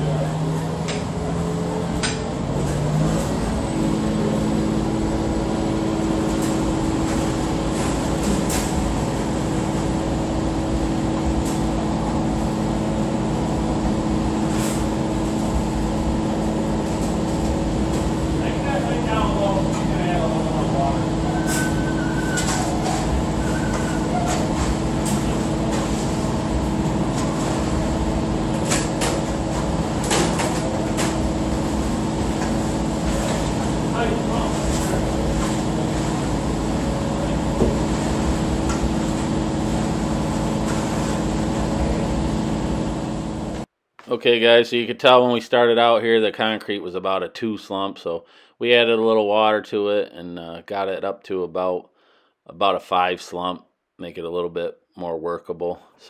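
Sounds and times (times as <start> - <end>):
diesel engine humming: 0.0 - 43.7.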